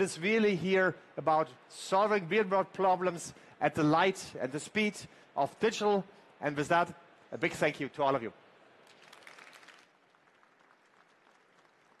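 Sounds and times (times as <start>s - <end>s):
faint audience applause: 8.8s - 12.0s.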